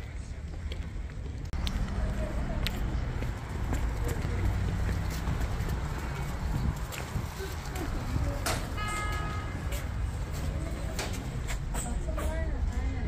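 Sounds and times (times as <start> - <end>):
footsteps on paving: 0.0 - 8.4
faint voices: 0.0 - 13.0
wind buffeting microphone: 0.9 - 12.2.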